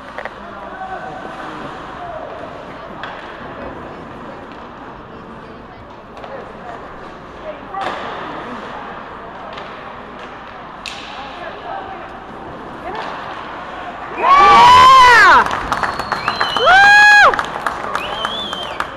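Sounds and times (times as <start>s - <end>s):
hockey sticks and puck clacking: 0.0s - 5.0s, 5.9s - 11.6s, 12.6s - 14.4s
murmur of voices: 0.0s - 15.5s.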